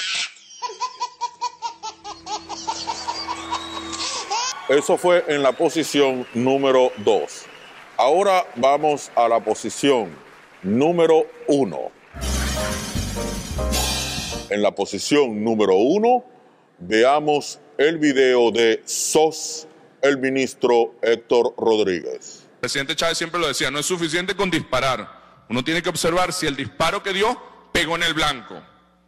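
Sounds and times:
baby laughing: 0:00.0 - 0:04.7.

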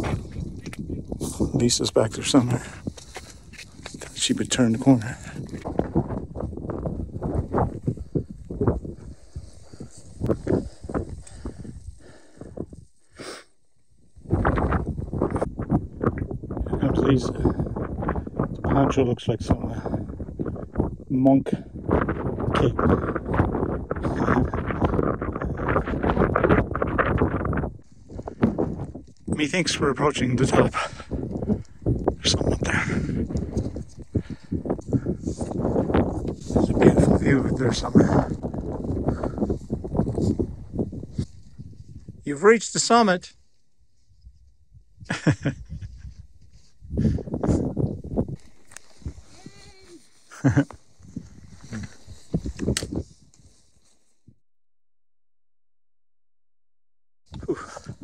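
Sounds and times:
wind buffeting microphone: 0:00.0 - 0:13.2, 0:13.8 - 0:42.3, 0:43.8 - 0:53.8, 0:57.3 - 0:58.0
footsteps crunching on stones: 0:02.4 - 0:05.8.

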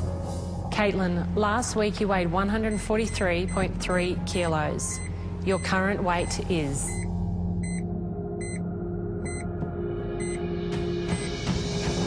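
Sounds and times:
suspense music drone: 0:00.0 - 0:12.0
short electronic beeps: 0:05.0 - 0:07.8, 0:09.3 - 0:09.5.

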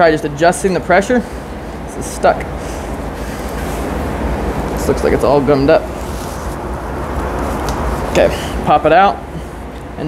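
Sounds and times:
rushing air with low rumble: 0:01.1 - 0:09.7.

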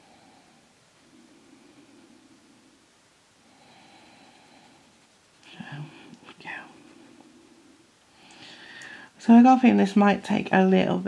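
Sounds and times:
woman whispering: 0:05.5 - 0:07.2.

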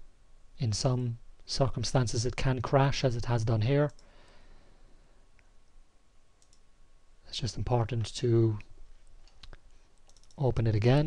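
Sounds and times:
faint clicks: 0:03.8 - 0:04.4, 0:06.4 - 0:06.7, 0:08.6 - 0:10.5.

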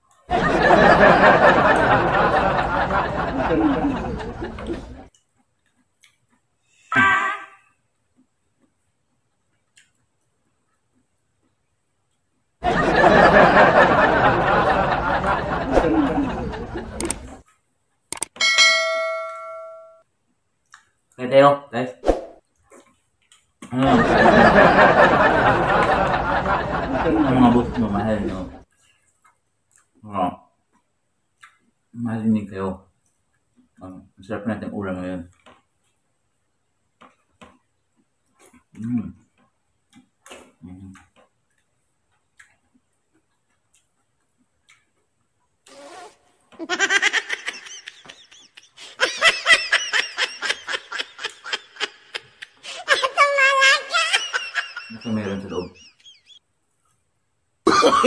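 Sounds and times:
mouse clicks: 0:18.1 - 0:18.4
bell ding: 0:18.4 - 0:20.0
man laughing: 0:46.6 - 0:53.2, 0:53.8 - 0:56.0, 0:57.7 - 0:58.0.

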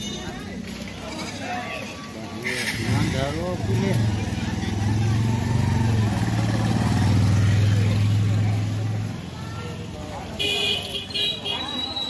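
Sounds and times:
motorcycle engine running: 0:02.8 - 0:09.3.

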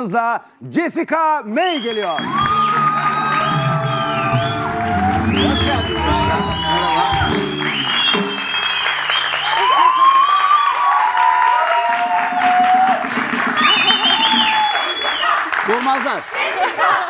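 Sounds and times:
audience applauding and whooping: 0:02.0 - 0:17.0
house band music: 0:02.2 - 0:09.0, 0:11.8 - 0:15.1.

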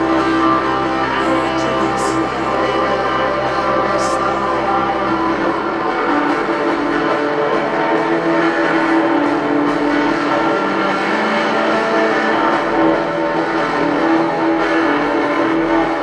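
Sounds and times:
electric guitar notes: 0:00.0 - 0:16.0
live rock music: 0:00.0 - 0:16.0.

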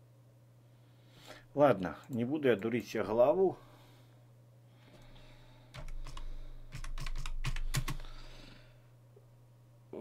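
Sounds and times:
keyboard keys clicking: 0:05.8 - 0:08.0.

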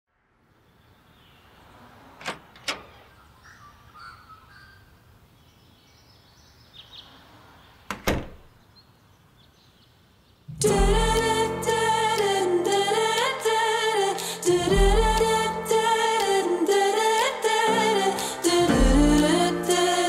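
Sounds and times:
door latch and frame knocks: 0:07.9 - 0:08.5.

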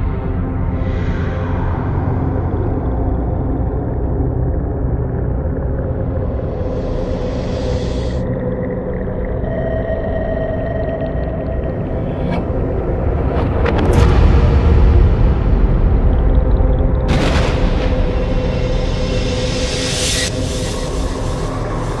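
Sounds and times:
deep droning rumble: 0:00.0 - 0:22.0.

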